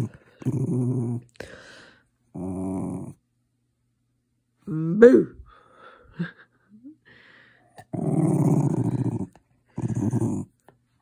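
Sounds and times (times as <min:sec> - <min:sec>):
dog growling: 0:00.0 - 0:01.4, 0:02.3 - 0:03.2, 0:07.8 - 0:10.6.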